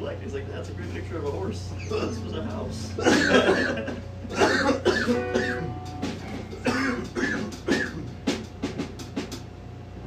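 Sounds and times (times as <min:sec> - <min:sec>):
steady low hum: 0:00.0 - 0:10.0
held musical note: 0:01.7 - 0:07.2
men laughing: 0:03.0 - 0:05.7.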